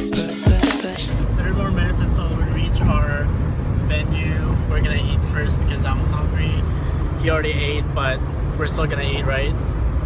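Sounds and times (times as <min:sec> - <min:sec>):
car engine and road rumble: 0:01.0 - 0:10.0
man talking: 0:01.3 - 0:09.6.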